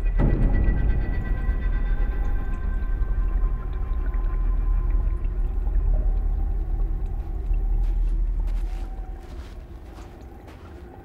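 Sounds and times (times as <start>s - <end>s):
deep low rumble: 1.0s - 11.0s.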